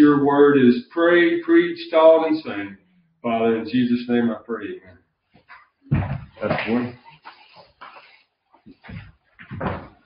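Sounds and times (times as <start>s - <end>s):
man's voice: 0.0s - 5.0s, 6.3s - 7.1s.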